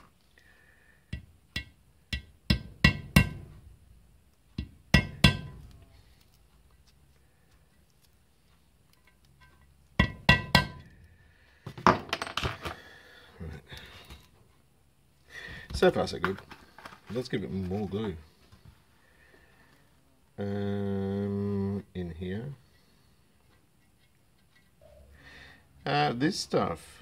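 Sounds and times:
hard objects knocking on metal: 1.1 - 3.6, 4.6 - 5.7, 10.0 - 10.9.

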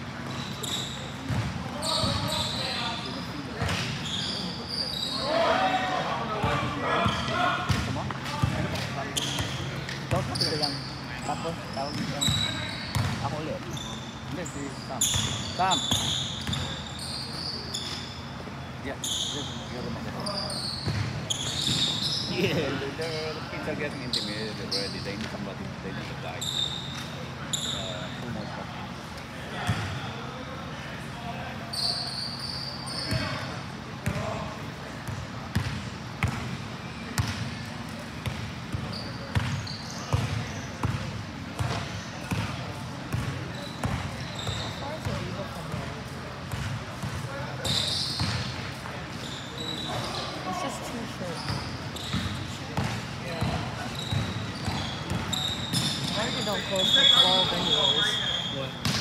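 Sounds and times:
sneakers squeaking on floor: 0.1 - 28.7, 31.5 - 59.0.

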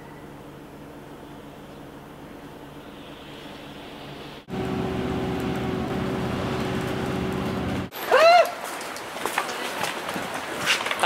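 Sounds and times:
bus engine humming: 4.0 - 7.9.

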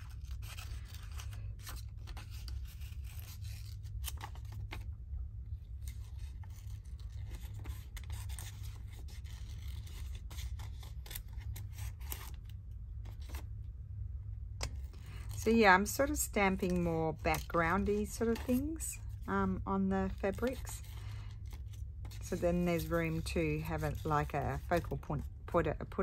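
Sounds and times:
steady low hum: 0.0 - 26.0
scissors snipping paper: 5.9 - 12.4, 16.0 - 19.2, 20.0 - 25.1.

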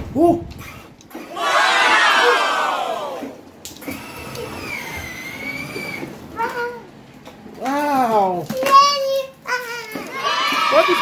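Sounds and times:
people cheering and shouting: 1.3 - 3.4, 10.1 - 11.0.

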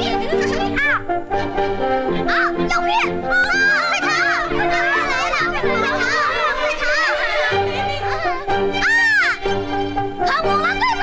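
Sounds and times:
background music with held notes: 0.0 - 11.0
cartoon voices crying out: 2.2 - 9.4.

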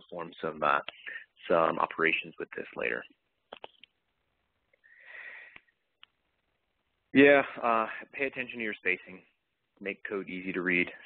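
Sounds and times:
person sniffing: 4.8 - 5.7.

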